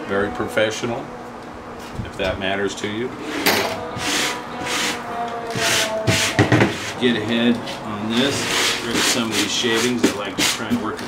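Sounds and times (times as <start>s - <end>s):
hand sweeping metal shavings: 6.9s - 10.7s.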